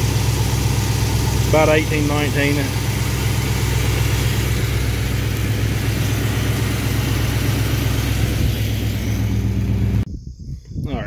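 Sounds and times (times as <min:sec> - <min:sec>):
car engine idling: 0:00.0 - 0:10.1.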